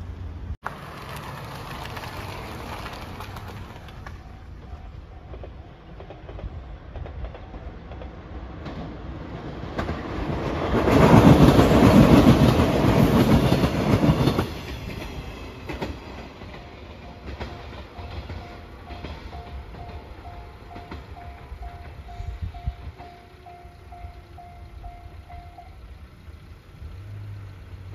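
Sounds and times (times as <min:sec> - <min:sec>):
electric train passing: 0:00.0 - 0:27.9
train wheels clattering over rail joints: 0:00.7 - 0:24.1
level crossing warning bell: 0:04.2 - 0:06.4, 0:16.5 - 0:26.0.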